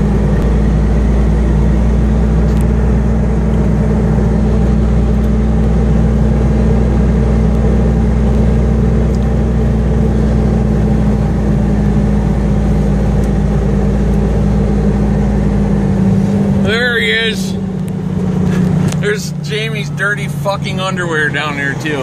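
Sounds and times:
truck engine running: 0.0 - 22.0.

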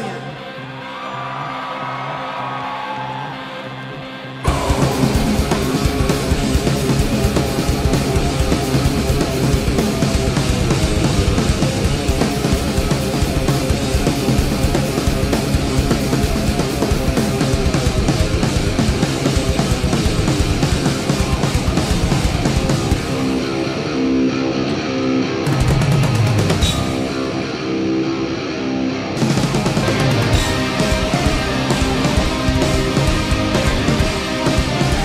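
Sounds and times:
distorted electric guitars: 3.3 - 35.0
low drone: 4.4 - 16.5
drum kit playing hard: 4.5 - 23.8, 25.4 - 27.5, 29.2 - 35.0.

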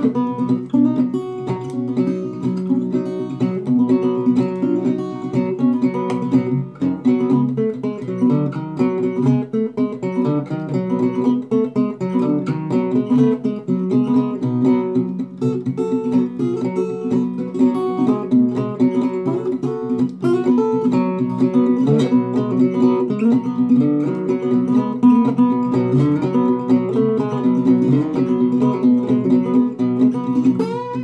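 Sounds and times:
slide acoustic guitar boogie: 0.0 - 31.0.

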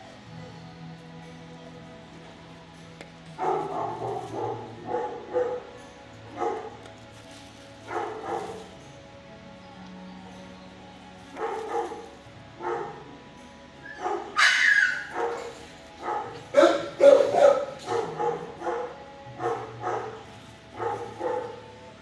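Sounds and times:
dog barking: 3.4 - 5.7, 6.4 - 6.8, 7.9 - 8.7, 11.4 - 13.1, 13.9 - 20.2, 20.8 - 21.7
dog yelping: 13.9 - 20.1.

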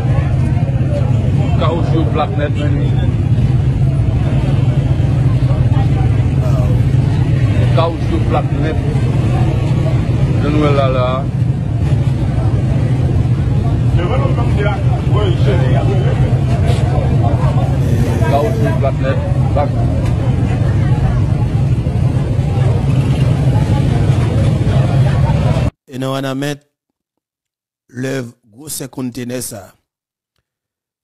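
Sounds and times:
people's voices in street: 0.0 - 25.8
vehicle engine rumbling: 11.3 - 25.7.

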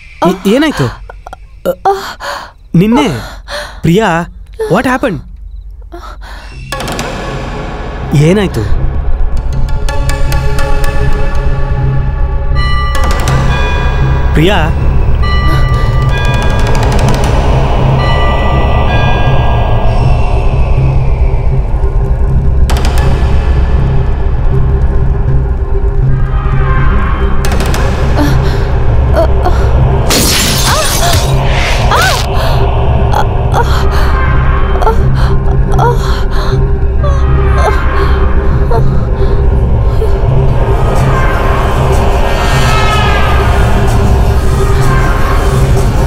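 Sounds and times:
low rumbling drone: 5.4 - 46.0.

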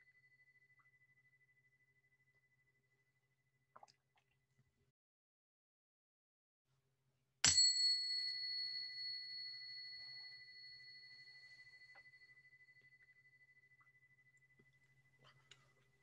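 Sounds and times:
meditation bell ringing: 7.5 - 15.2.

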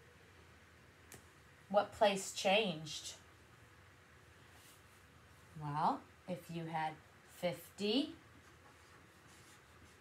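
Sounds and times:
marker scratching on paper: 8.4 - 10.0.

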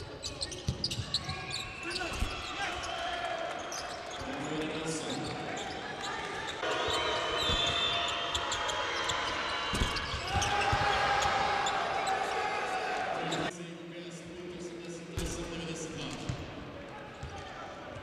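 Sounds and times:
crowd noise: 0.0 - 18.0.

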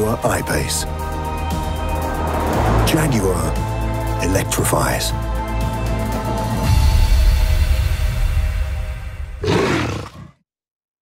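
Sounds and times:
soundtrack music with deep bass: 0.0 - 9.5
big cat roar: 9.4 - 10.4.

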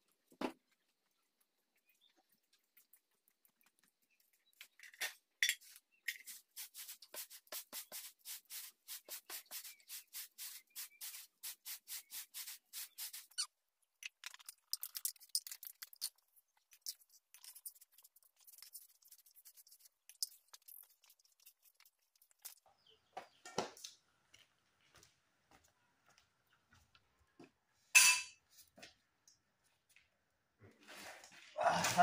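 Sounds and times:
rhythmic rubbing by hand: 6.2 - 13.5, 16.9 - 22.5.

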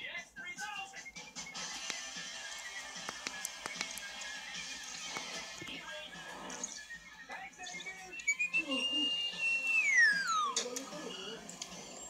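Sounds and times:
cartoon background music: 0.0 - 12.0
whistle tone sliding down: 7.8 - 11.2.

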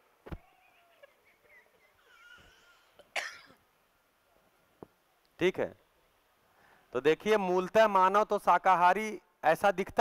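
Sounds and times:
person coughing: 2.2 - 3.6.

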